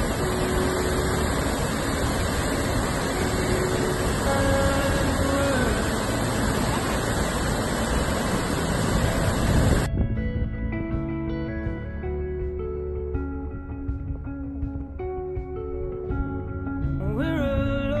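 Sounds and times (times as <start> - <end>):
waterfall pouring onto rocks: 0.0 - 9.9.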